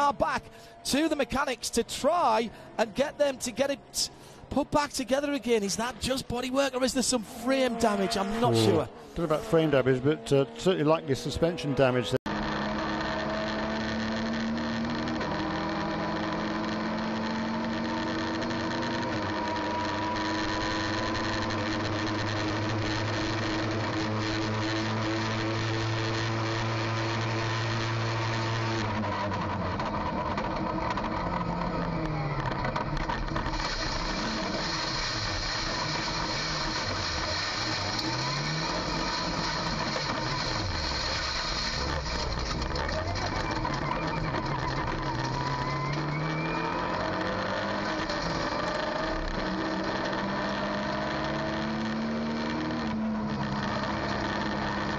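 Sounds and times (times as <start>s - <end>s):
race car engine at full throttle: 0.0s - 54.9s
car braking hard: 26.5s - 51.6s.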